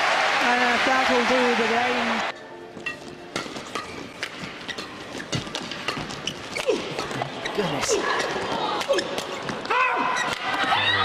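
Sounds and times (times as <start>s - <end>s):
racket hitting shuttlecock: 2.8s - 7.2s.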